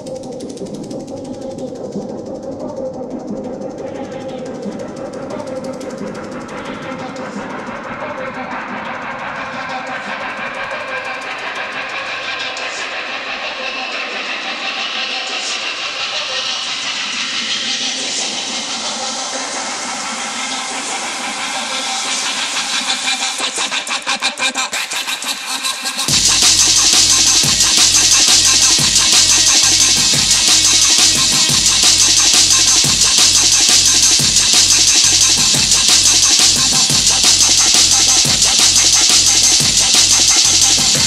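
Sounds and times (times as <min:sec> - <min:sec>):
drum and bass music: 0:00.0 - 0:41.0
quickening drum roll: 0:26.1 - 0:41.0.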